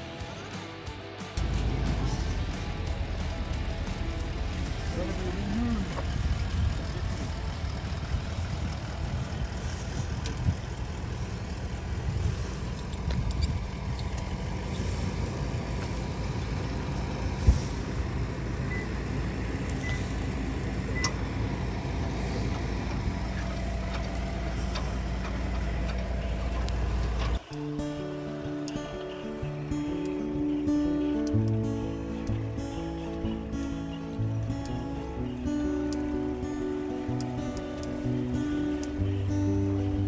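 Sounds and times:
vehicle engine idling: 0.0 - 40.0.

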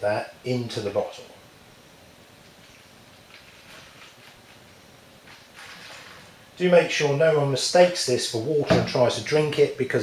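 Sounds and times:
liquid trickling into plastic bottle: 2.5 - 6.4.

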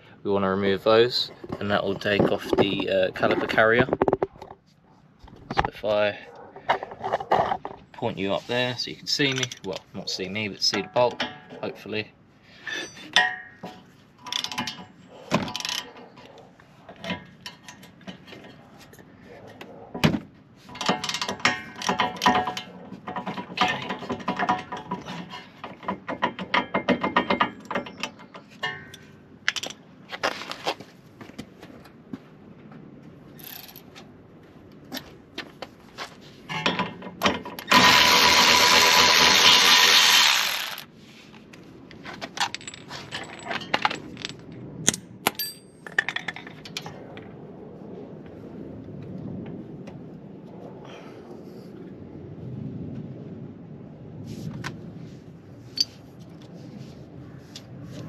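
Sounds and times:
tools clinking on steel: 12.6 - 16.4, 26.1 - 29.8, 42.4 - 46.8.

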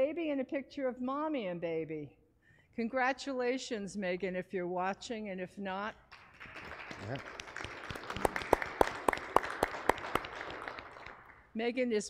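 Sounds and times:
congregation applauding: 6.1 - 11.5
hands clapping sharply nearby: 6.1 - 11.5.

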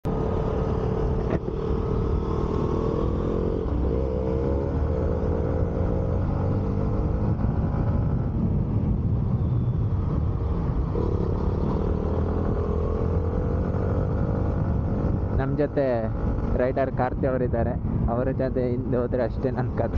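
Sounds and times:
wind on microphone: 6.6 - 18.8.

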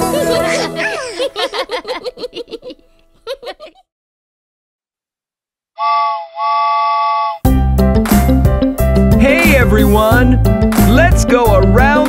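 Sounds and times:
cartoon steam-train whistle: 5.8 - 7.4
children's song backing music: 9.2 - 12.0.

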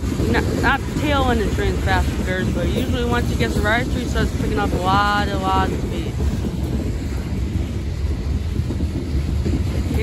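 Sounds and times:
train wheels rumbling on rail: 0.0 - 10.0
wind on microphone: 0.0 - 10.0.

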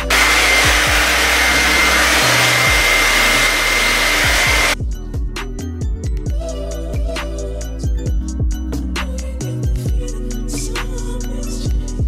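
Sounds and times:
hair dryer blowing: 0.0 - 4.8.

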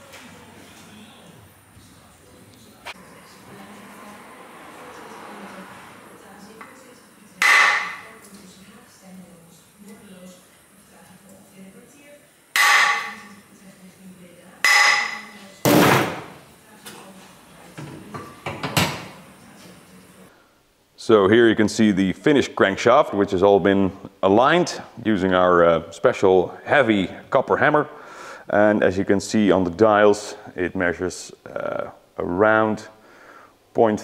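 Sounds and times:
hammer striking metal: 7.4 - 8.1, 12.6 - 13.3, 14.6 - 16.2.

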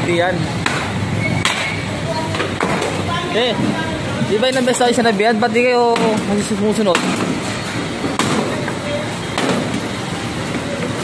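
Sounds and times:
street and vehicle noise: 0.0 - 11.0.

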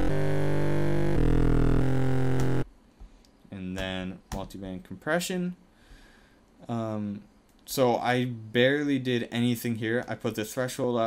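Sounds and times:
distorted synth bass notes: 0.0 - 2.7.

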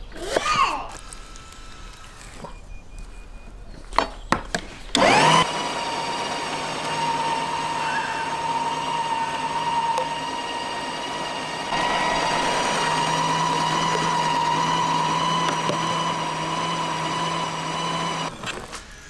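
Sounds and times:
meat grinder motor whine: 0.9 - 2.5, 4.9 - 19.0.

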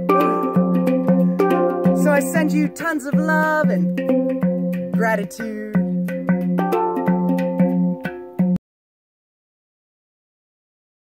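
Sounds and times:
handpan notes: 0.0 - 8.6.

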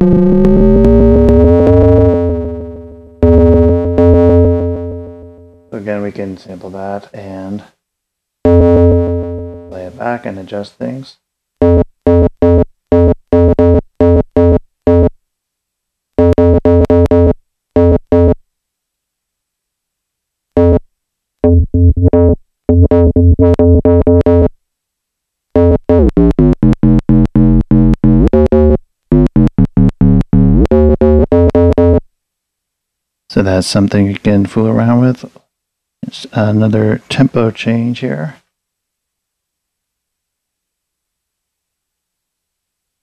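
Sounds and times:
synth tone notes: 0.0 - 5.7, 8.5 - 10.0, 16.2 - 18.4, 21.4 - 24.5, 25.6 - 32.0.

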